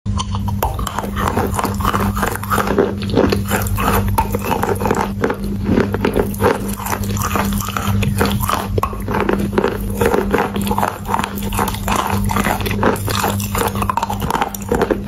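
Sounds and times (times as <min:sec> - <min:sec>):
chalk crunching being chewed: 0:00.1 - 0:15.0.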